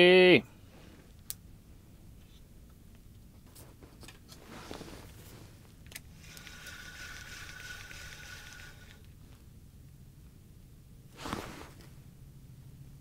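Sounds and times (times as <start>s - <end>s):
handling rustle: 3.4s - 9.5s, 11.1s - 12.0s
spinning reel whirring: 6.1s - 9.1s.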